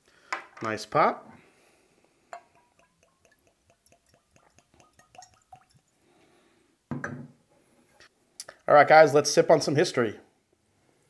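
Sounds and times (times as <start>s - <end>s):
liquid glugging and dripping: 2.3s - 6.1s.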